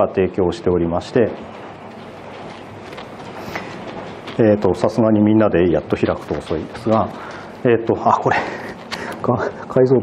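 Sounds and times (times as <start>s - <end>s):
room hiss: 0.0s - 10.0s.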